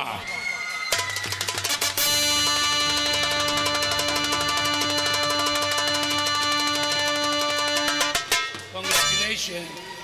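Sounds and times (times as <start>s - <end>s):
fast drum roll on frame drums: 0.9s - 8.8s
band playing held chord: 2.0s - 9.2s.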